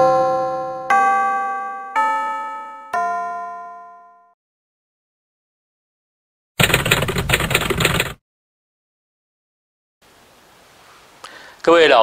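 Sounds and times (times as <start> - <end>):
typewriter keystrokes clacking: 6.6 - 8.2.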